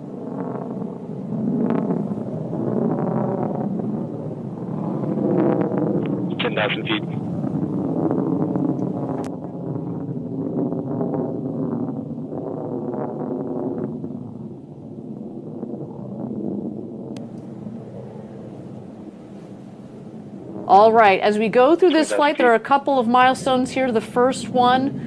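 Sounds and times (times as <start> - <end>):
rocket engine rumble: 0.0 - 25.0.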